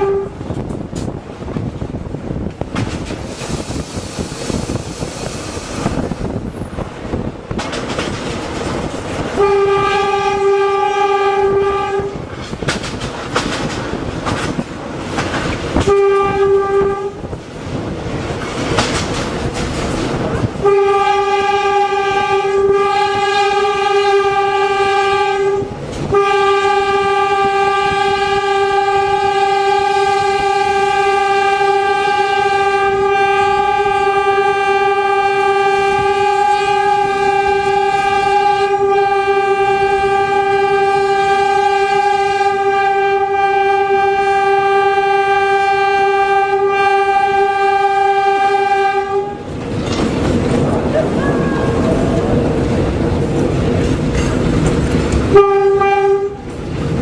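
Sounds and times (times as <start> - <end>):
locomotive horn blasts: 0.0 - 0.6, 9.3 - 12.3, 15.8 - 17.4, 20.5 - 49.5, 55.3 - 56.6
wheels clattering on rail: 0.0 - 43.7, 46.0 - 57.0
locomotive engine: 0.0 - 57.0.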